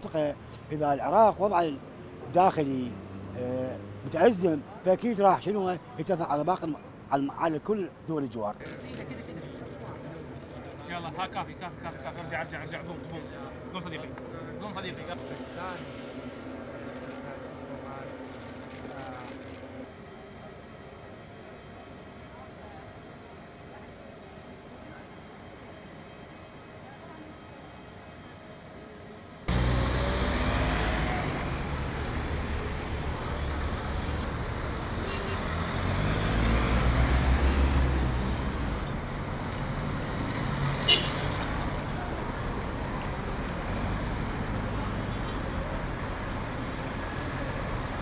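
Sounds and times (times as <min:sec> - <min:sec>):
city road traffic: 0:00.0 - 0:48.0
faint outdoor ambience: 0:00.0 - 0:48.0.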